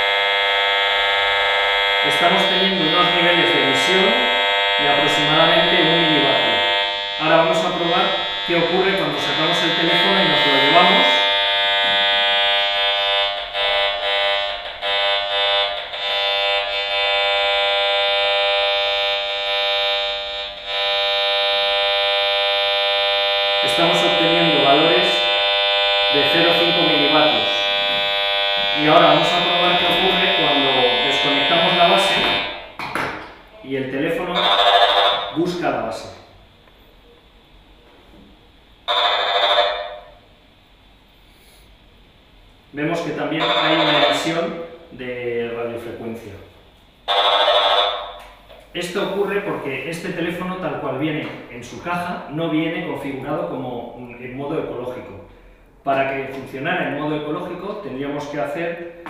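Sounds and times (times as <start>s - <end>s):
harsh electronic buzz: 0.0s - 37.0s, 38.5s - 54.8s.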